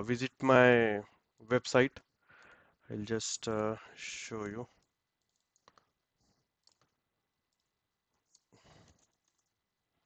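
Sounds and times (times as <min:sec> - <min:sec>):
computer mouse clicks: 0:04.8 - 0:06.0, 0:06.6 - 0:09.6.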